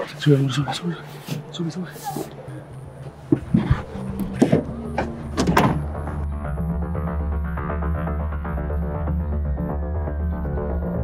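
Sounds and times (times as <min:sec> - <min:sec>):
electronic background music: 0:02.3 - 0:11.0
van hatch knocks and clunks: 0:03.2 - 0:06.1.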